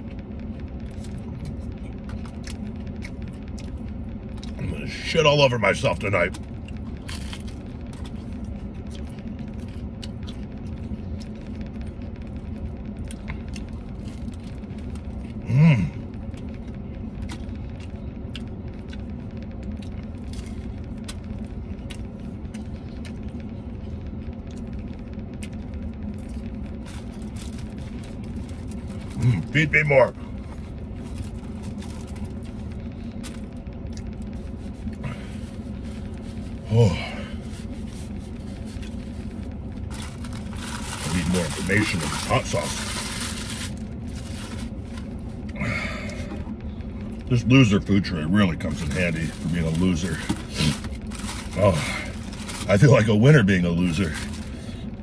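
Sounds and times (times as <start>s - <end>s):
car idling rumble: 0.0s - 55.0s.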